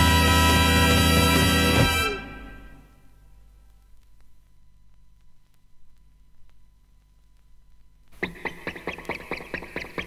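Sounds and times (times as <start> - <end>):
staccato music from vinyl record: 8.2 - 10.0.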